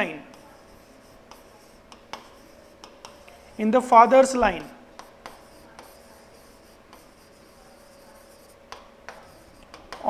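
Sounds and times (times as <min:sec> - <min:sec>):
writing strokes on a board: 0:00.0 - 0:10.0.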